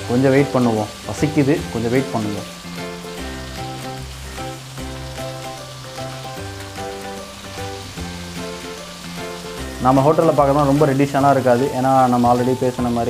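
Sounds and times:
background music with bass line: 0.0 - 13.0
chicken sizzling on hot iron: 0.0 - 13.0.

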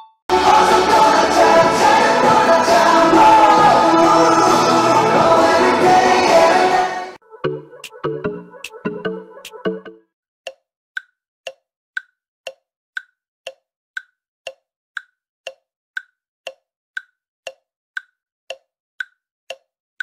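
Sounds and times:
clock ticking: 7.4 - 19.7.

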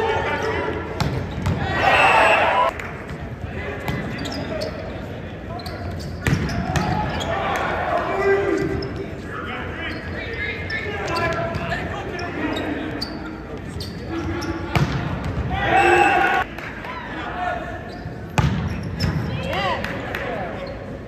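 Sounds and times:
players' voices: 0.0 - 21.0
loud shouting: 1.6 - 2.7, 15.5 - 17.7
volleyball hits: 6.2 - 7.2.

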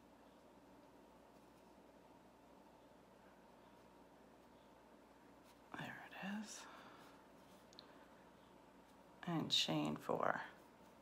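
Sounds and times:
faint room hiss: 0.0 - 11.0
woman whispering: 5.7 - 6.8.

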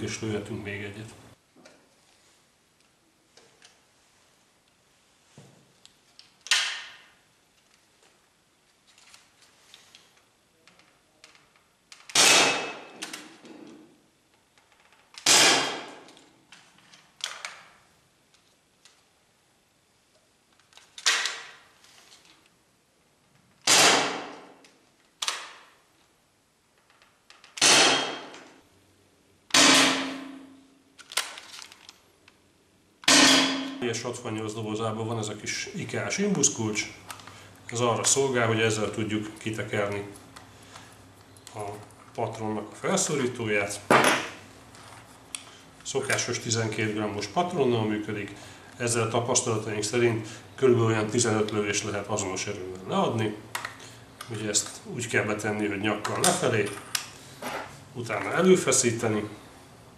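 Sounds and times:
paintball marker shots echoing: 12.1 - 13.1, 15.2 - 16.1, 23.7 - 24.6, 27.6 - 28.4, 29.5 - 30.5, 33.0 - 33.8.

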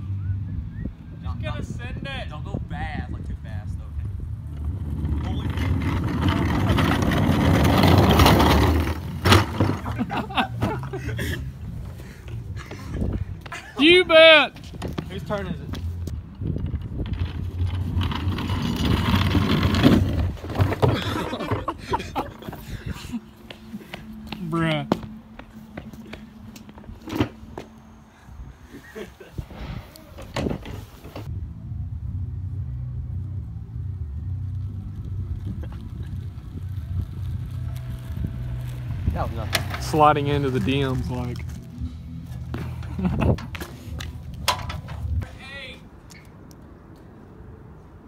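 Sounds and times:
wind buffeting microphone: 0.0 - 13.8, 14.5 - 24.1, 28.3 - 48.0
plastic trash can rolling on concrete: 4.6 - 10.8, 16.6 - 21.9, 36.6 - 41.6.

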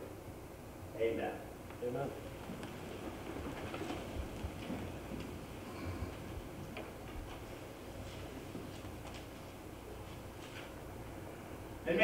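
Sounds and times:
faint clicks and soft knocks: 2.4 - 5.5.

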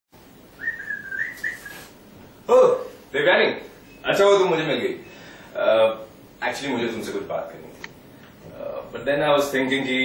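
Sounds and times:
person whistling: 0.6 - 1.9.

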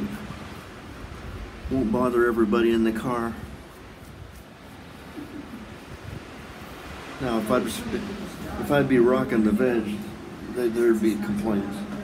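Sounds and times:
ocean surf: 0.0 - 12.0
wind buffeting microphone: 0.0 - 12.0.

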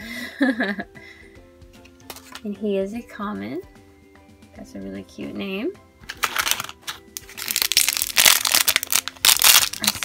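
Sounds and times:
foil bag crinkling: 6.1 - 10.0.

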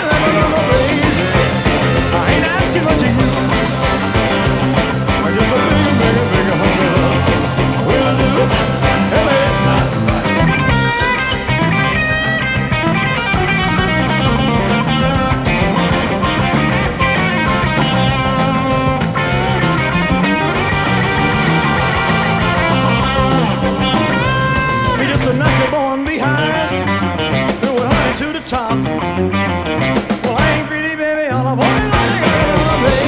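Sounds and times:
drums and bass: 0.0 - 33.0
electric guitar lead lines: 0.0 - 33.0.

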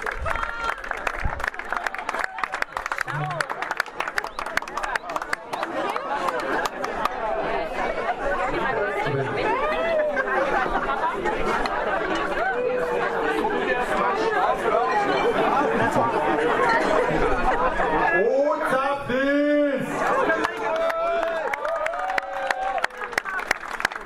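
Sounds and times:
hand claps: 0.0 - 7.2
crowd chatter: 0.0 - 24.0.

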